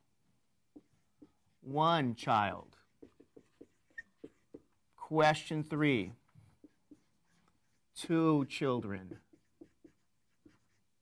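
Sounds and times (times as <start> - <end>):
marker writing on whiteboard: 0.6 - 11.0.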